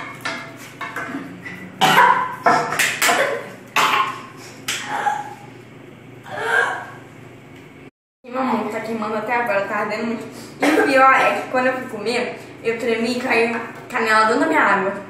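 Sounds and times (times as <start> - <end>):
girl coughing and gagging: 1.8 - 5.4.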